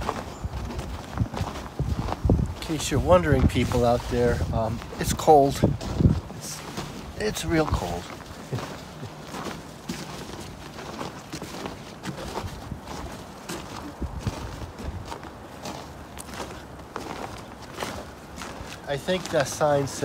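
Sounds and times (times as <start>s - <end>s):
footsteps on snow: 0.0s - 20.0s.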